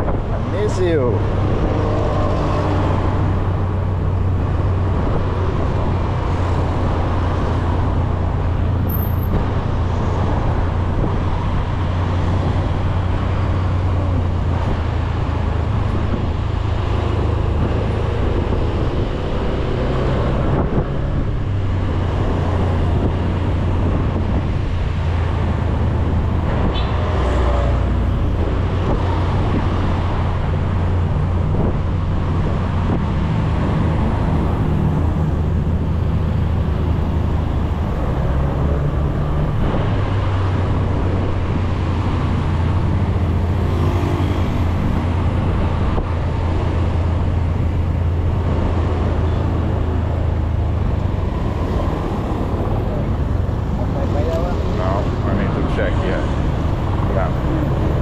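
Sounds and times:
road and traffic noise: 0:00.0 - 0:58.0.

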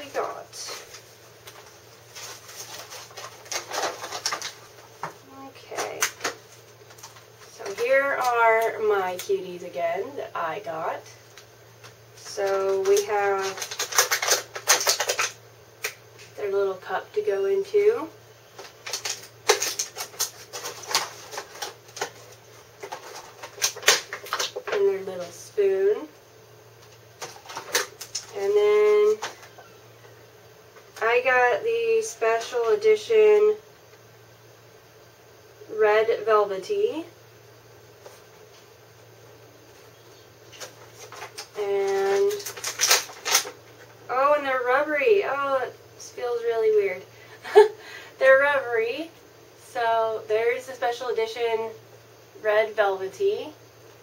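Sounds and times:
plastic packaging rustling: 0:00.6 - 0:08.4, 0:11.8 - 0:15.4, 0:18.5 - 0:25.3, 0:26.8 - 0:29.7, 0:40.4 - 0:44.1
sharp clicks and crinkles: 0:00.7 - 0:08.7, 0:11.4 - 0:16.3, 0:18.6 - 0:24.8, 0:26.8 - 0:28.4, 0:40.5 - 0:44.0.

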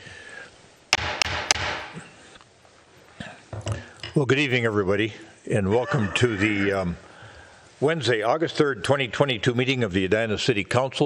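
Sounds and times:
sharp knocks: 0:00.9 - 0:02.0.

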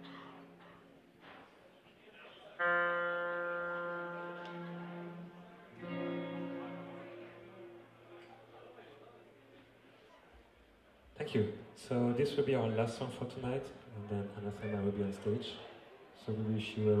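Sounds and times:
guitar note ringing: 0:02.6 - 0:08.4.

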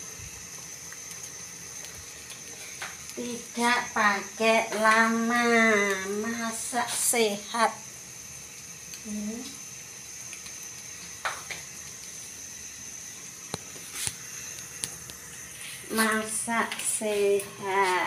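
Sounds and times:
omelette sizzling in oil: 0:00.0 - 0:18.0.

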